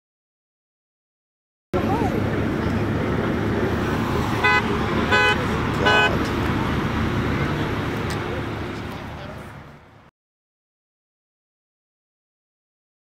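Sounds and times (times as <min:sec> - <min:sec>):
street traffic noise: 0:01.8 - 0:10.1
vehicle horn honking: 0:04.3 - 0:06.2.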